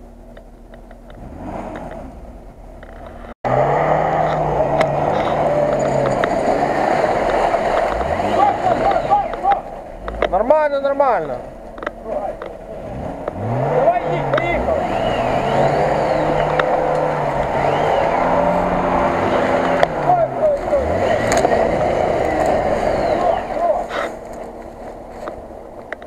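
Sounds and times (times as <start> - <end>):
engine revving hard: 1.2 - 2.2, 3.4 - 10.4, 12.6 - 24.3
tyres churning mud: 3.5 - 26.0.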